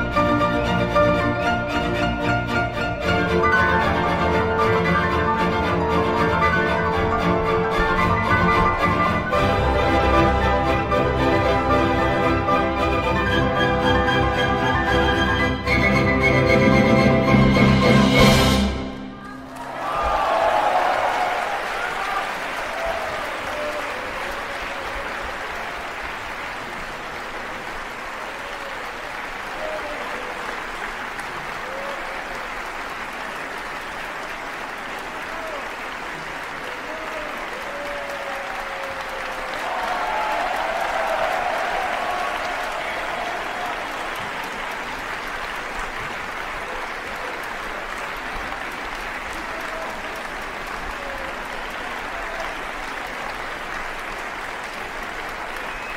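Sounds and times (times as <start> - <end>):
large audience applauding: 0.0 - 55.9.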